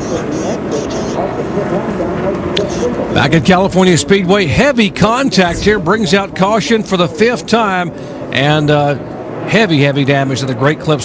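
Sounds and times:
indistinct radio voices: 0.0 - 8.6
race track background noise: 0.0 - 11.0.

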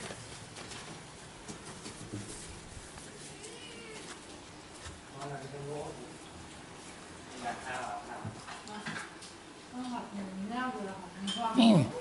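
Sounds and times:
cat meowing faintly: 3.2 - 4.2.

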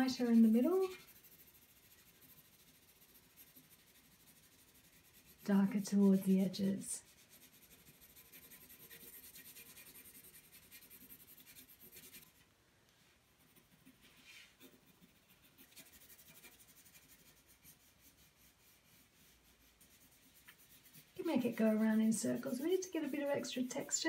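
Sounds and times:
pencil scratching on paper: 0.0 - 12.4, 13.3 - 24.0.

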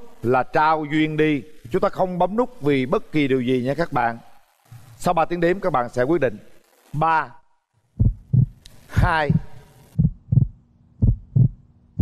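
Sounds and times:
faint steady hum: 0.0 - 12.0
heartbeat thumps: 8.0 - 8.6, 9.2 - 12.0.

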